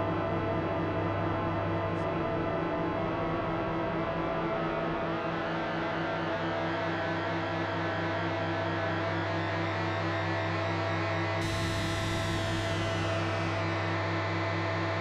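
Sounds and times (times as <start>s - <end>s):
synthesizer drone music: 11.4s - 14.3s.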